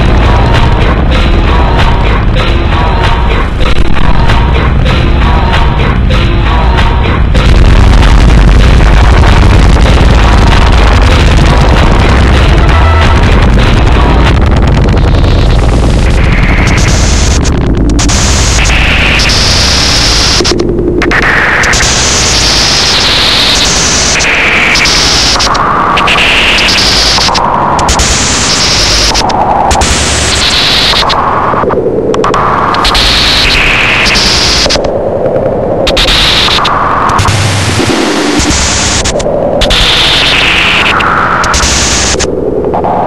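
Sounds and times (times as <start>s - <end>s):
harsh noise music: 0.0s - 35.2s, 35.8s - 43.0s.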